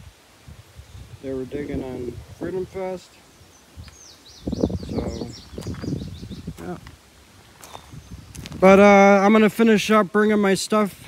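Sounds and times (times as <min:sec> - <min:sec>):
songbird chirping: 0:00.0 - 0:10.8.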